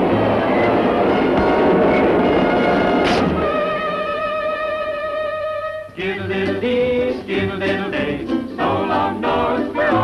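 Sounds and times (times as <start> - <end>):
cartoon train speeding past: 0.0 - 5.7.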